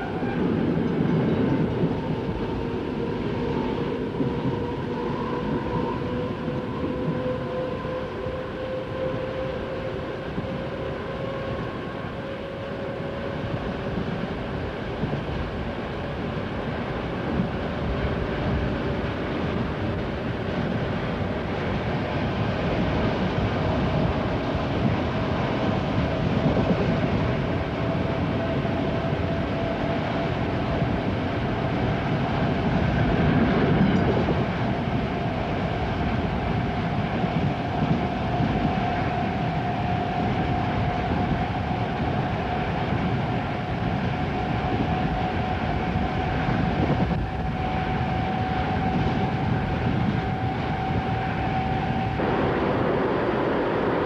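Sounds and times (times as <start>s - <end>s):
train rumble and hiss: 0.0s - 54.0s
faint rising whine: 51.0s - 54.0s.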